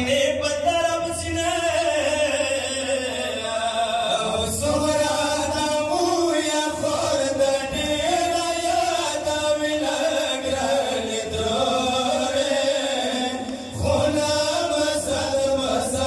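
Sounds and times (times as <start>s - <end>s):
men chanting a lament into microphones: 0.0s - 16.0s.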